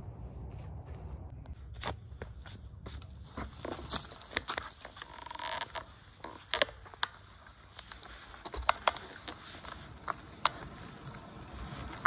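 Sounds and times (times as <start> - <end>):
bicycle creaking: 0.0 - 12.0
bicycle clicking: 3.3 - 12.0.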